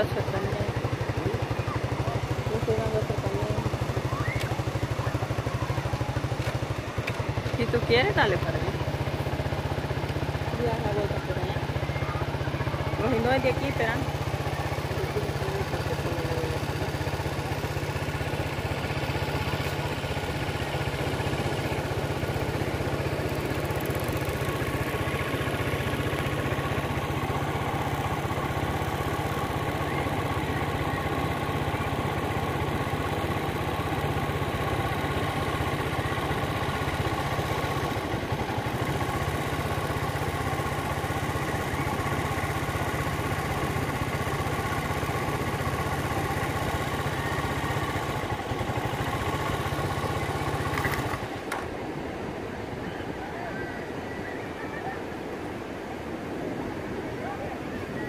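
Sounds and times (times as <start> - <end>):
engine idling: 0.0 - 58.0.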